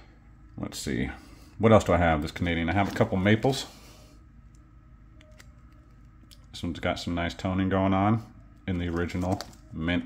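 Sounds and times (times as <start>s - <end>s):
faint steady hum: 0.0s - 10.0s
clicks of crinkly plastic packaging: 8.7s - 9.6s.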